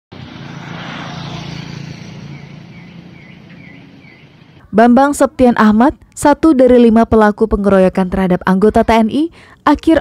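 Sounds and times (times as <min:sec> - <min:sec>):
vehicle engine and road noise: 0:00.1 - 0:10.0
bird chirping: 0:02.2 - 0:04.8.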